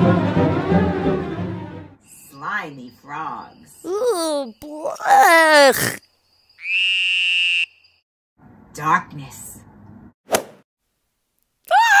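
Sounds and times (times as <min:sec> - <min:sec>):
person imitating frog croak: 0:03.8 - 0:06.0.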